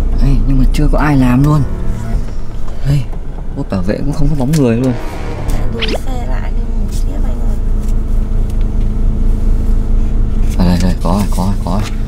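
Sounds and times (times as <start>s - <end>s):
car engine idling drone: 0.0s - 12.0s.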